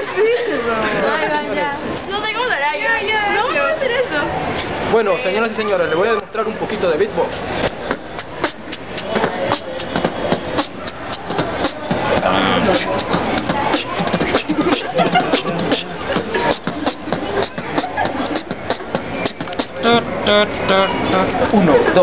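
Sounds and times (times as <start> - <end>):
person beatboxing: 7.6 - 21.5.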